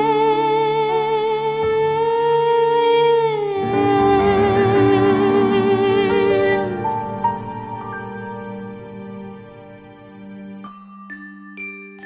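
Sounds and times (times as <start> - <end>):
woman singing a wordless note: 0.0 - 7.3.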